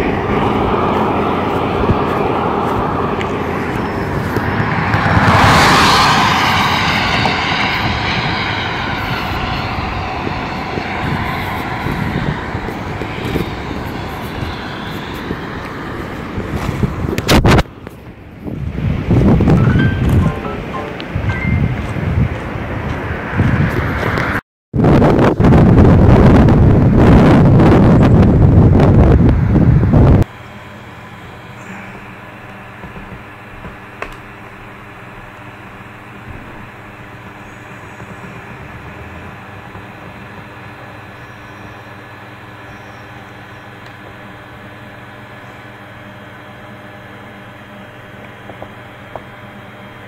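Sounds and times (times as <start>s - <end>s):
rushing roar: 0.0s - 17.0s, 36.6s - 41.0s
rough gusty noise: 0.0s - 17.6s.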